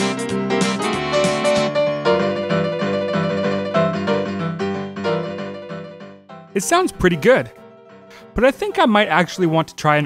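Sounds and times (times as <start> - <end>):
piano playing blues chords: 0.0 - 9.7.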